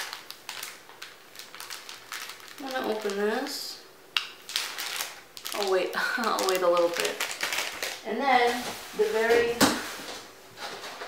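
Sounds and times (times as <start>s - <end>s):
plastic packaging clicks and crinkles: 0.0s - 3.6s, 4.2s - 8.0s.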